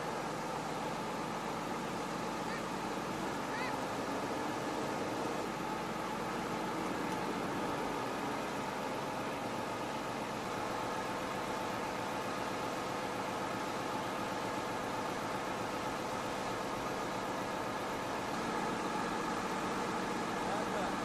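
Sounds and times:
crane engine idling: 0:00.0 - 0:21.0.

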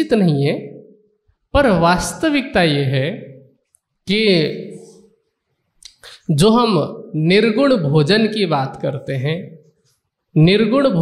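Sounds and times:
man speaking into microphone: 0:00.0 - 0:00.9, 0:01.5 - 0:05.1, 0:05.8 - 0:11.0.

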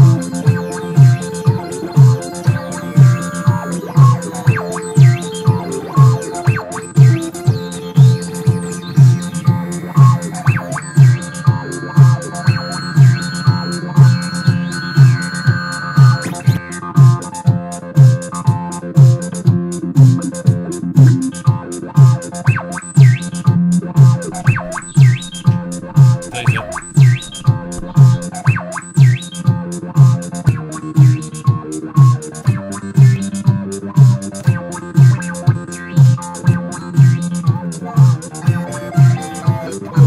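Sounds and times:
techno kick drum beat: 0:24.0 - 0:28.3
gliding synth notes: 0:24.2 - 0:28.4.

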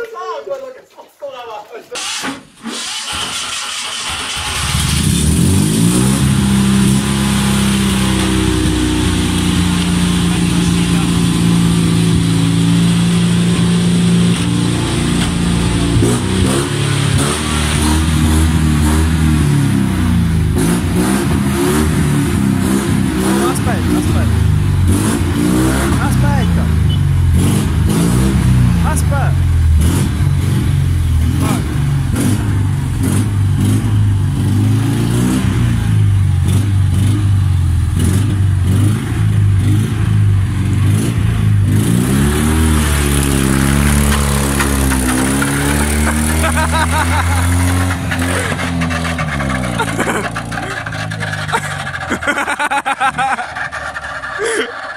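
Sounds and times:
car engine revving: 0:02.0 - 0:54.9.

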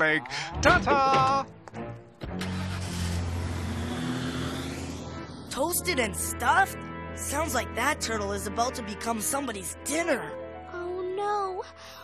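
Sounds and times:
cartoon car engine starting: 0:02.2 - 0:05.5.

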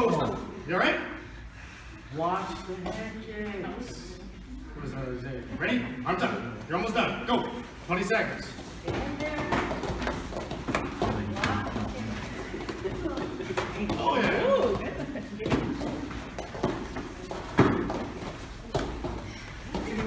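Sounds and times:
feet on foam mats: 0:08.5 - 0:20.0.

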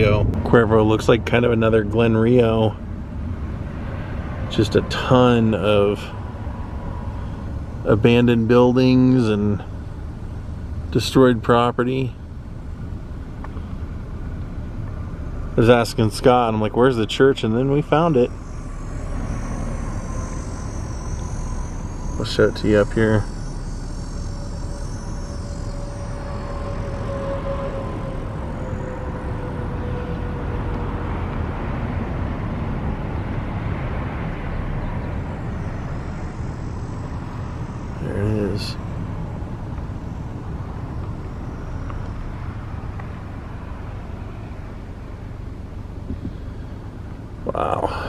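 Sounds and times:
car road and engine noise: 0:00.0 - 0:48.0
faint thin whine: 0:00.0 - 0:48.0.

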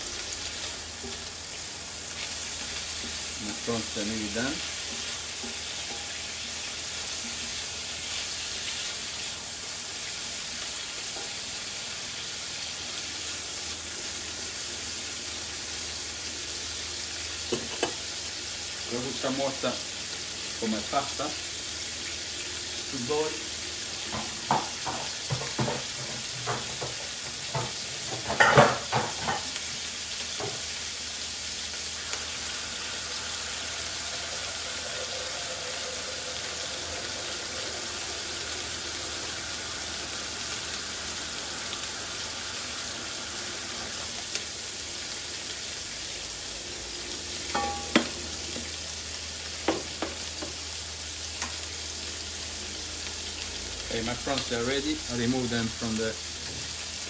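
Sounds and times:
prawns sizzling in a pan: 0:00.0 - 0:57.0.

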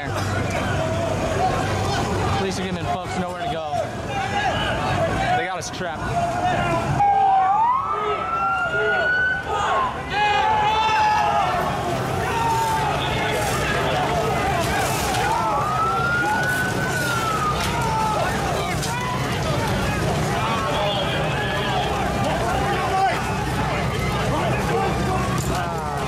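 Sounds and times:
crowd shouting: 0:00.0 - 0:26.0
police siren wailing: 0:06.9 - 0:26.0.

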